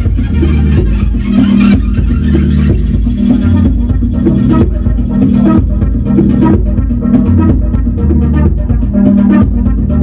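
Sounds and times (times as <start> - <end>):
steady repeating synth tone: 0.0 - 10.0
synthesizer bass line: 0.0 - 10.0.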